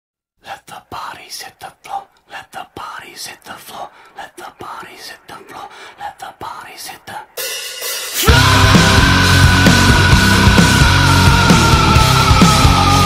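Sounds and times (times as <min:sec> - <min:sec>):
breathy whispering voice: 0:00.4 - 0:07.4.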